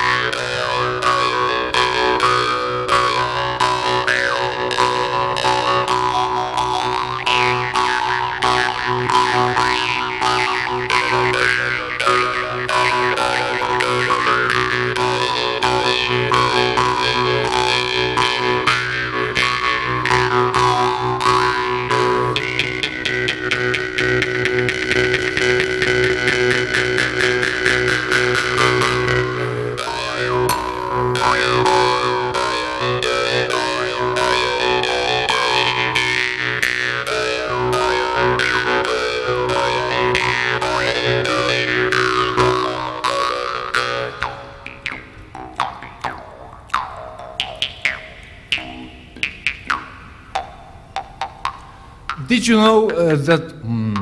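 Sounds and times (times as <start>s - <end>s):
jew's harps playing: 0.0s - 54.0s.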